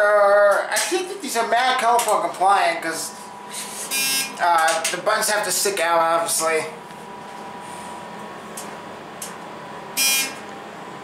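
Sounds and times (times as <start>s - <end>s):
elevator cab hum: 0.0s - 11.0s
loud electronic beep: 3.9s - 4.3s, 10.0s - 10.4s.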